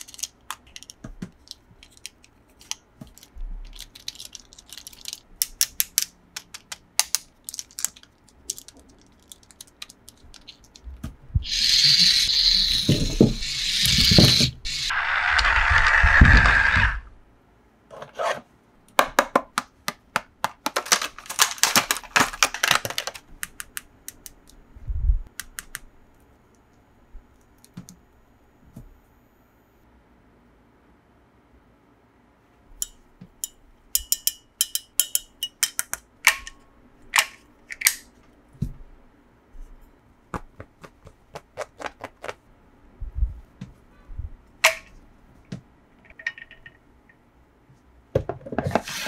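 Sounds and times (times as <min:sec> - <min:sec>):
toy car whirring on carpet: 0:11.4 - 0:17.0.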